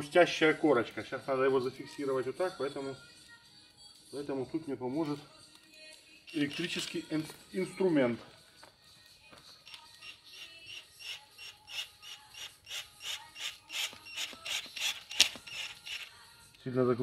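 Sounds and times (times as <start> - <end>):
cordless drill driving screw into wood: 10.7 - 16.1.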